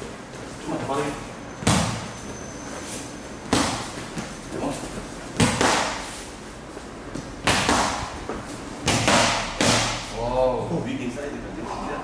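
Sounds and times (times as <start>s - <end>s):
boxing gloves smacking focus mitts: 7.1s - 10.1s.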